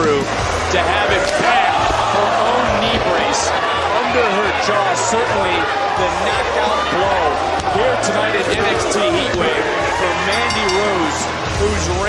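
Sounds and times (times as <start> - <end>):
voices: 8.0 - 11.8.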